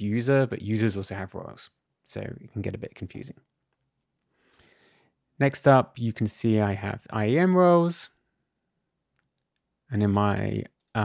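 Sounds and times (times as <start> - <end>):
person speaking: 0.0 - 3.4, 5.4 - 8.1, 9.9 - 11.0.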